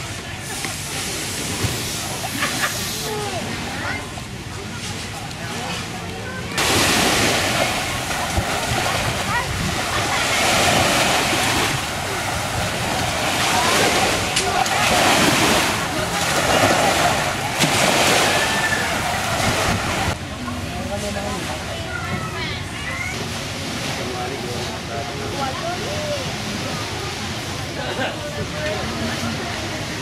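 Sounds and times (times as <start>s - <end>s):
sea water sloshing in surf: 0.0s - 20.2s
faint voices: 0.0s - 30.0s.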